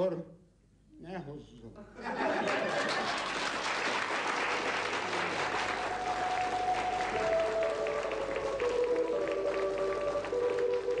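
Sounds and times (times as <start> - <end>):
audience applause: 2.2 - 11.0
slow melody of held notes: 5.7 - 11.0.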